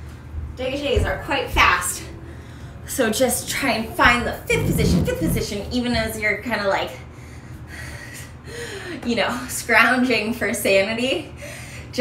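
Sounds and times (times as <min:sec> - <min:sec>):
woman humming: 0:04.4 - 0:05.6
woman breathing sharply: 0:07.1 - 0:09.0.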